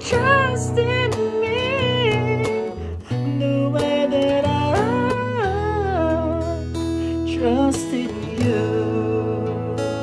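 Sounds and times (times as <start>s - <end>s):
man singing vocal run: 0.0s - 6.6s, 7.3s - 10.0s
acoustic guitar: 0.0s - 10.0s.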